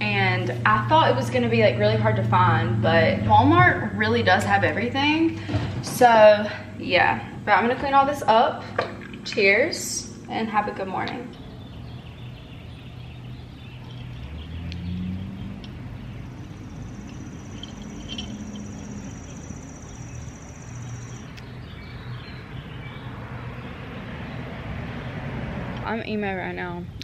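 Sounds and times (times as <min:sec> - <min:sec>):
distant road traffic rumble: 0:00.0 - 0:27.0.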